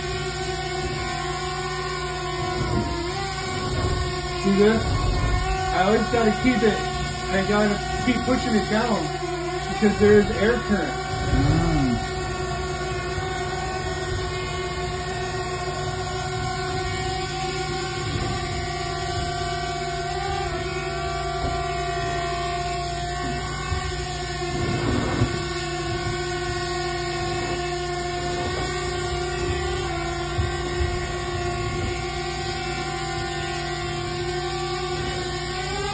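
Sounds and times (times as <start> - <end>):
drone propellers humming: 0.0 - 35.9.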